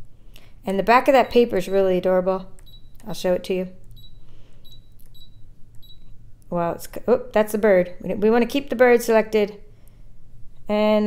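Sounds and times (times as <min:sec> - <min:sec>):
short high touchscreen beeps: 0:02.6 - 0:03.0, 0:04.0 - 0:06.1.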